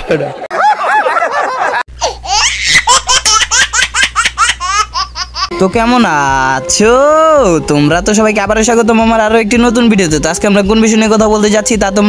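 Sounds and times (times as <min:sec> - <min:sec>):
high-pitched pulsing laughter: 0:00.5 - 0:05.5.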